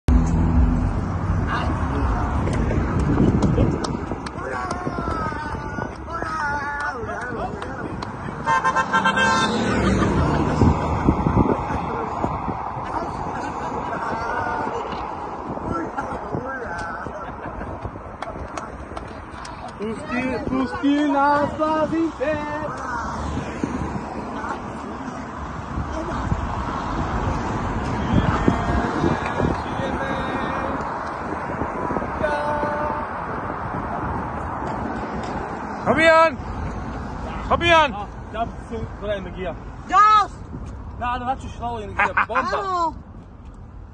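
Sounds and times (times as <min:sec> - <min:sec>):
road traffic hum: 0:00.0 - 0:43.9
passing vehicle: 0:00.1 - 0:43.9
car horn short toots: 0:08.4 - 0:09.8.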